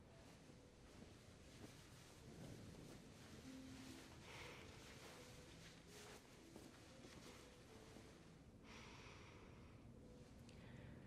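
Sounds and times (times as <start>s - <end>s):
woman breathing through wool: 4.1s - 5.5s, 8.6s - 10.0s.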